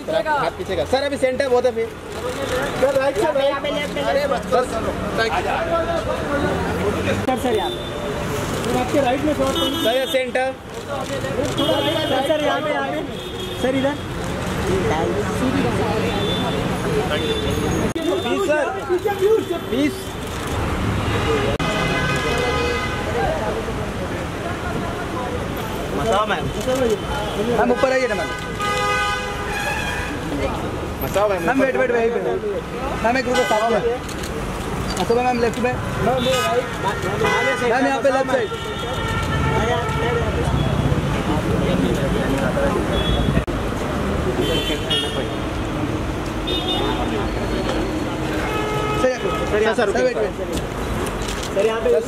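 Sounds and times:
crowd voices: 0:00.0 - 0:28.7, 0:29.4 - 0:52.0
street traffic rumble: 0:00.0 - 0:52.0
car horn: 0:27.4 - 0:30.2, 0:35.9 - 0:40.9, 0:48.2 - 0:49.7.

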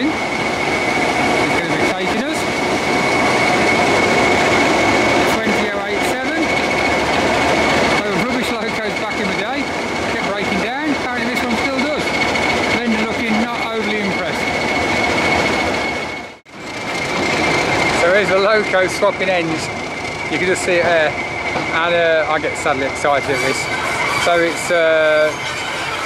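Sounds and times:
diesel locomotive engine whine: 0:00.0 - 0:26.0
high turbocharger whistle: 0:13.7 - 0:26.0.

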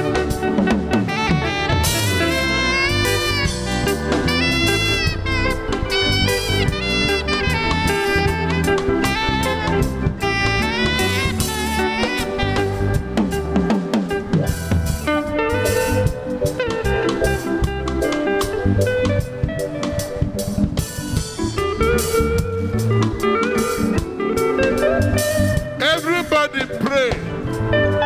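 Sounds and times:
drum kit and bass: 0:00.0 - 0:28.0
electric guitar lead: 0:00.0 - 0:28.0.

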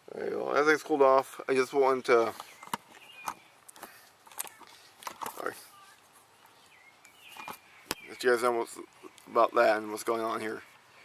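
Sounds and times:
camera handling knocks and rustles: 0:02.3 - 0:05.5, 0:07.2 - 0:08.1.

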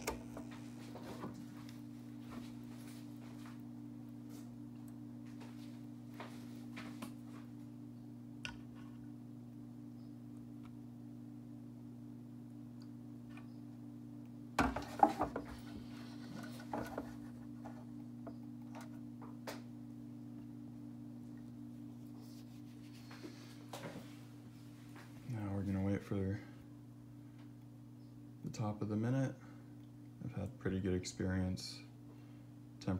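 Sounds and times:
low electrical hum: 0:00.0 - 0:32.9.

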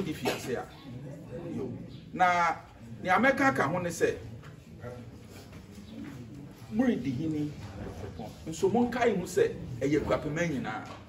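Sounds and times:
man speaking: 0:06.7 - 0:11.0.

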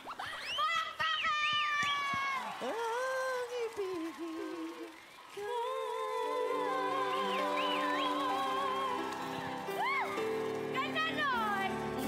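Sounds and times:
whistle register singing: 0:07.1 - 0:08.9.

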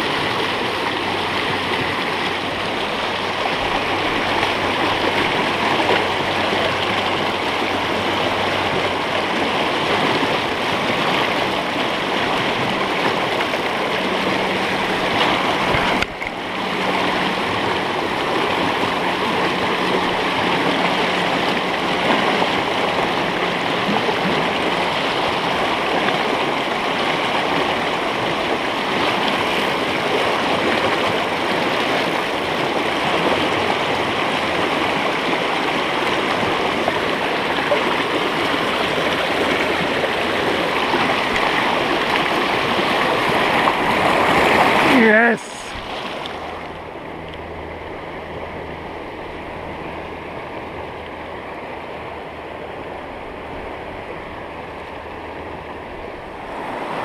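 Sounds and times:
river rushing over rocks: 0:00.0 - 0:57.0.

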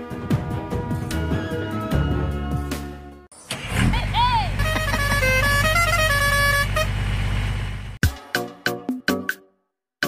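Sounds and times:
horn-like melody: 0:04.5 - 0:07.1
engine-like rumble with ticks: 0:04.6 - 0:08.0.

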